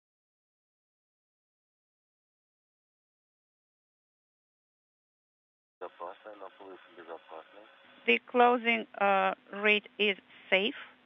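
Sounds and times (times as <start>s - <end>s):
person talking over radio: 5.8s - 7.7s.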